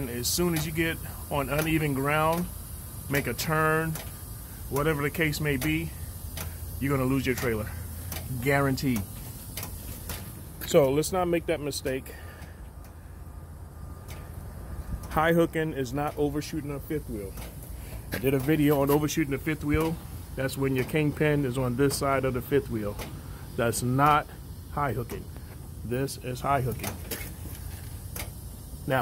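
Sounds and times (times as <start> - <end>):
diesel truck engine idling: 0.0 - 29.0.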